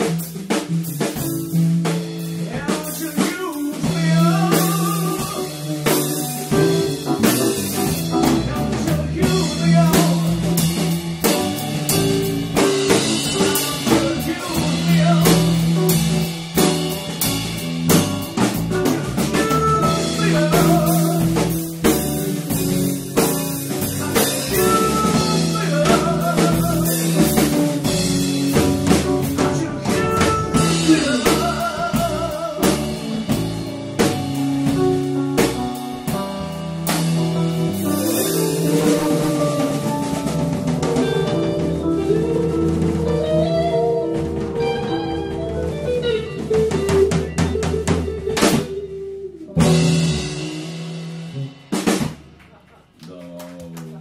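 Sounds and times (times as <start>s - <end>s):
guitar: 0.0s - 52.4s
drum kit with cymbals: 0.0s - 53.0s.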